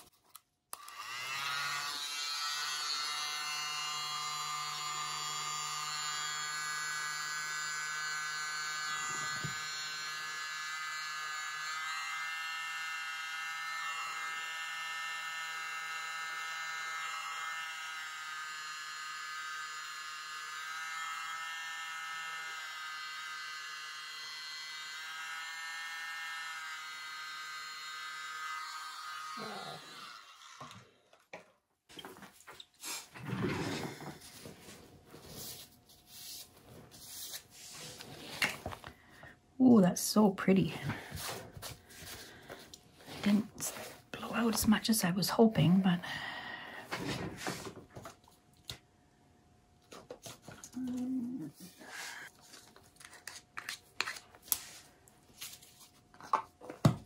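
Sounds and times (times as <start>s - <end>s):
electric blower motor whine: 0.8s - 30.9s.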